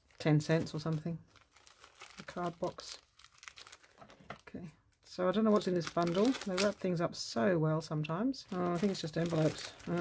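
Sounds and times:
plastic wrapping crinkling: 0.0s - 7.0s, 8.4s - 10.0s.

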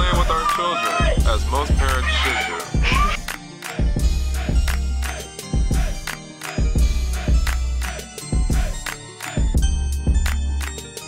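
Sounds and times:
hip hop music: 0.0s - 11.0s.

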